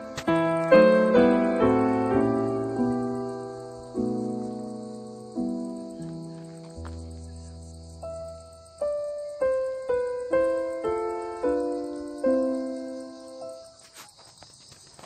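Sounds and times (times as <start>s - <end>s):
piano notes and chords: 0.0s - 14.0s
insects chirring: 0.0s - 15.0s.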